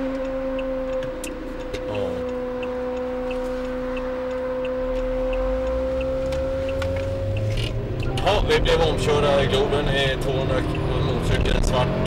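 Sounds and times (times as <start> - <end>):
car engine and road rumble: 0.0 - 12.0
faint regular ticking: 0.2 - 11.7.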